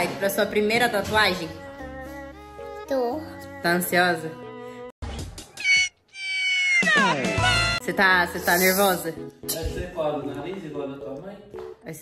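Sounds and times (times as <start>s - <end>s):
drawn-out cat-like meow: 5.6s - 7.8s.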